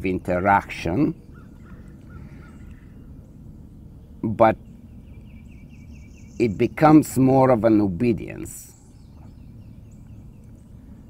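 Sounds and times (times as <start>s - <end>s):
distant bird calls: 0.0s - 11.0s.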